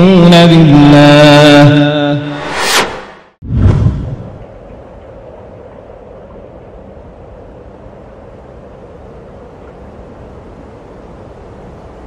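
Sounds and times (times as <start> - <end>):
noisy low drone: 1.9 - 4.5.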